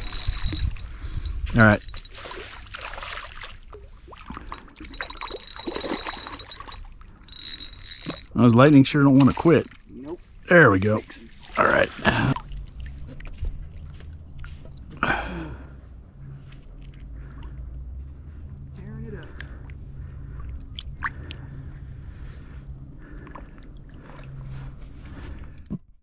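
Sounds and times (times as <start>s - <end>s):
water sloshing and dripping: 0.0s - 15.0s, 19.2s - 25.4s
low rumble: 9.8s - 25.7s.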